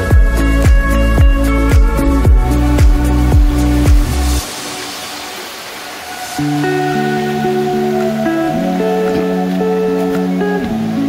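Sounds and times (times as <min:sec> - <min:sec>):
background music with a beat: 0:00.0 - 0:05.2
stream running over rocks: 0:00.0 - 0:11.0.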